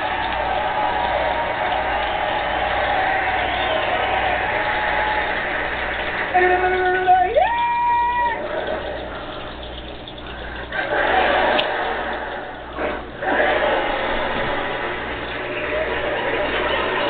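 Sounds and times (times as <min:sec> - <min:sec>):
audience laughing and clapping: 0:00.0 - 0:06.7, 0:07.5 - 0:09.6, 0:10.4 - 0:17.0.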